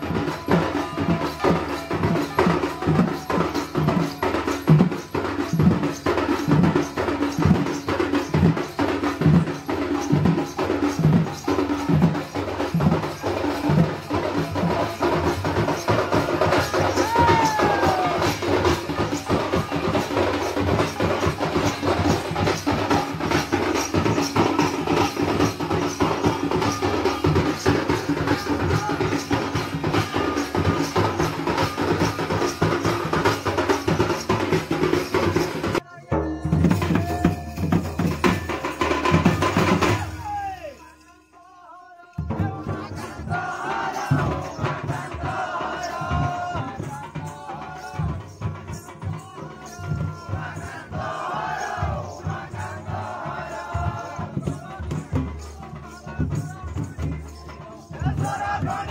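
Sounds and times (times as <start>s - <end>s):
deep drum beat: 0.0s - 40.4s, 42.2s - 58.9s
drums played fast: 0.0s - 41.0s, 42.2s - 58.9s.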